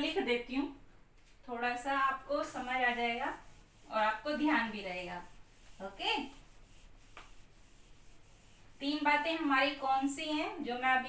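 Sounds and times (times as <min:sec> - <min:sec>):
eraser rubbing on whiteboard: 0:02.2 - 0:11.0.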